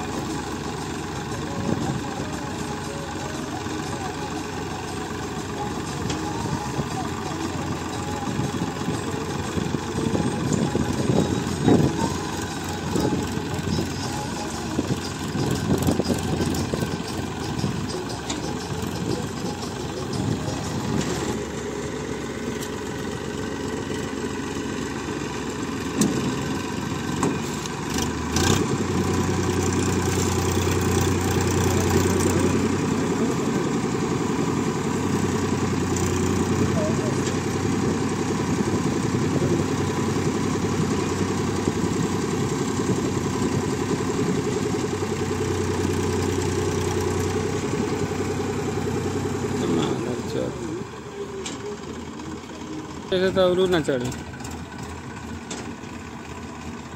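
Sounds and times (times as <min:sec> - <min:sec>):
tractor diesel engine droning: 0:00.0 - 0:56.9.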